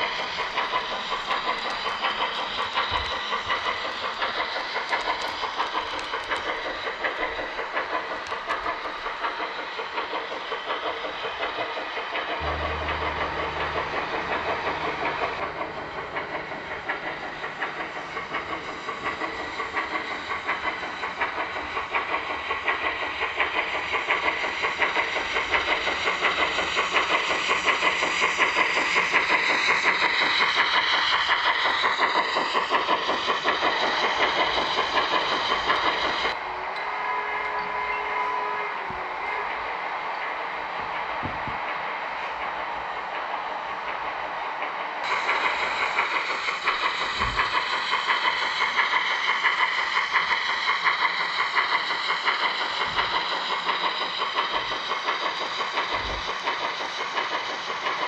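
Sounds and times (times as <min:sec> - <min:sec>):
model steam locomotive chuffing: 0:00.0 - 0:58.0
train rolling on track: 0:00.0 - 0:58.0.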